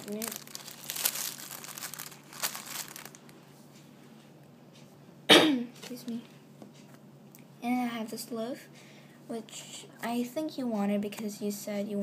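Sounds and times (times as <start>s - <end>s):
plastic packaging crinkling: 0.0s - 3.4s.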